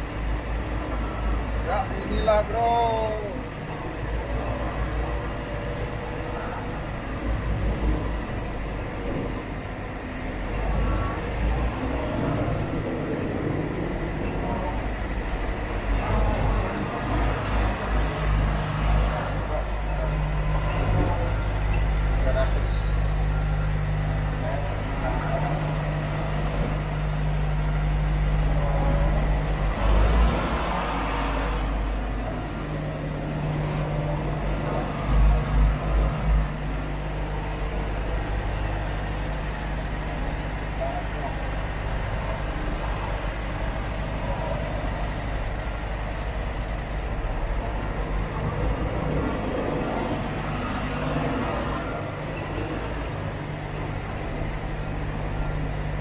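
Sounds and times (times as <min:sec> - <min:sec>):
diesel engine running slowly: 0:00.0 - 0:56.0.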